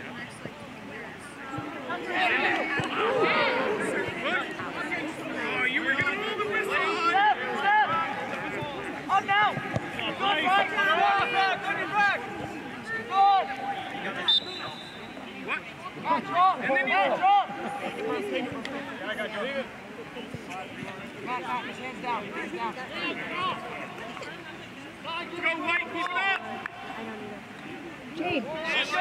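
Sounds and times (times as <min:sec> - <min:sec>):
people shouting and calling: 0:01.6 - 0:14.7
short high whistle: 0:14.2 - 0:15.2.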